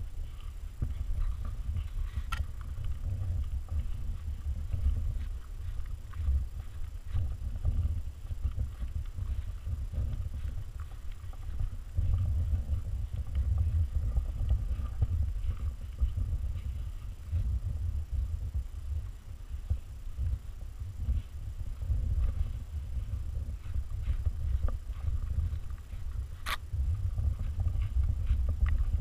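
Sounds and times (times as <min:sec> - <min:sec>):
faint ticks: 0:00.0 - 0:29.0
wind buffeting microphone: 0:00.0 - 0:29.0.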